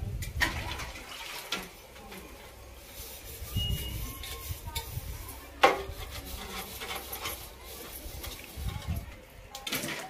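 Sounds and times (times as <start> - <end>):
water splashing: 0.4 - 1.8
scrubbing in a steel plate: 1.0 - 9.1.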